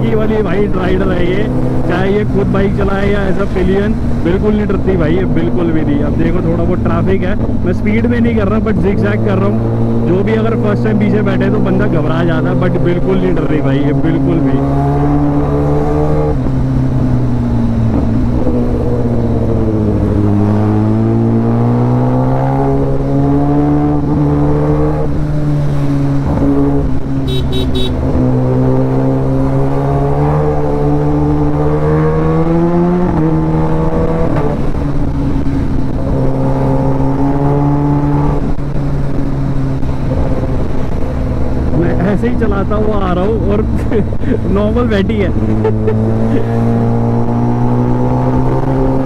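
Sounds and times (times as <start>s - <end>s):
motorcycle engine accelerating: 0.0s - 49.0s.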